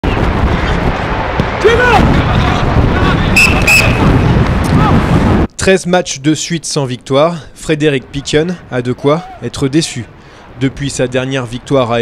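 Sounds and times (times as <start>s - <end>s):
players shouting: 0.7s - 5.1s
whistle blasts: 3.4s - 4.3s.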